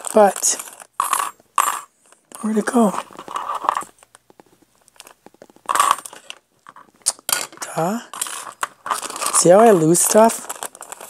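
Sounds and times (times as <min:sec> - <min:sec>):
paper cards rustling: 0:00.0 - 0:11.0.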